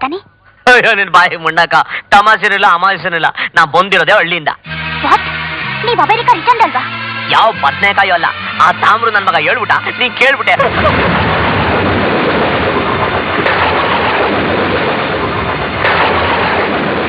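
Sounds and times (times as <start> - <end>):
rumbling thunder: 10.5 - 17.0.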